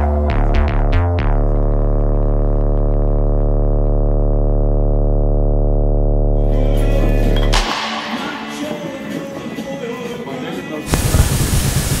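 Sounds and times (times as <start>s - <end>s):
deep synthesizer tone: 0.0s - 9.0s.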